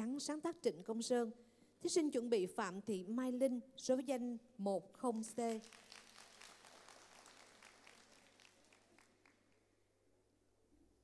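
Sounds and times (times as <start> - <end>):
audience applause: 5.6 - 9.5.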